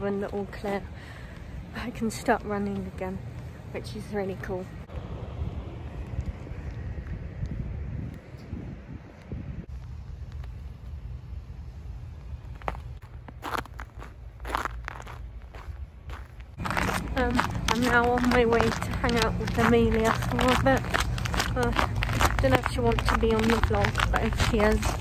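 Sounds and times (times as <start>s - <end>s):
low rumble on microphone: 4.8s - 25.0s
footsteps crunching in snow: 9.7s - 25.0s.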